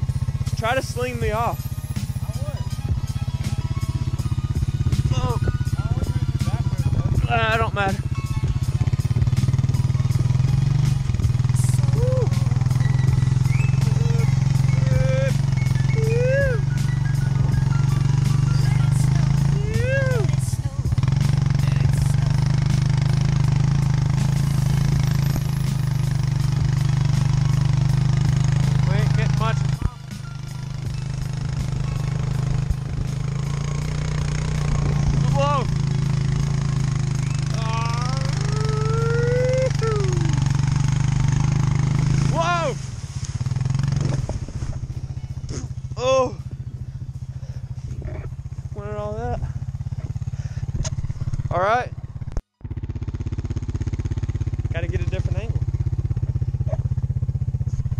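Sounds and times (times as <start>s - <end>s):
atv engine running: 0.0s - 57.9s
person yelling: 11.7s - 12.4s, 13.8s - 16.7s, 19.5s - 20.4s, 37.5s - 40.4s, 42.3s - 42.8s.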